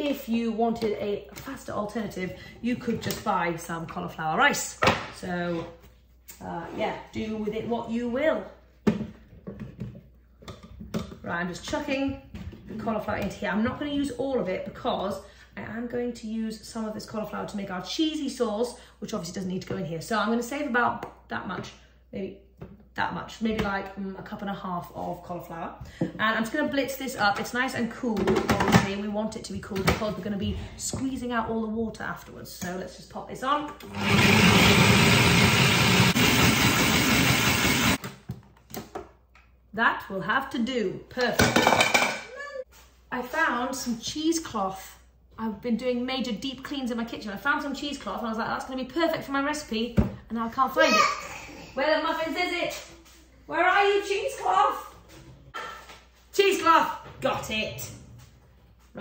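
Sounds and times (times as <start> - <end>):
food processor motor running: 33.8 - 38.0.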